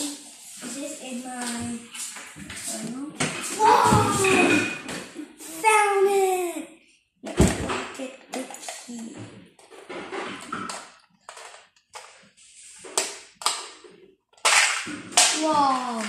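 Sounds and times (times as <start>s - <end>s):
child's voice: 0.0s - 1.9s, 2.7s - 6.8s, 15.4s - 16.0s.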